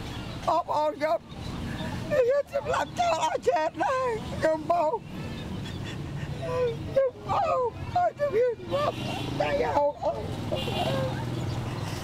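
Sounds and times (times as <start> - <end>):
low street noise: 0.0 - 12.0
woman sobbing: 2.2 - 4.2, 5.7 - 9.0.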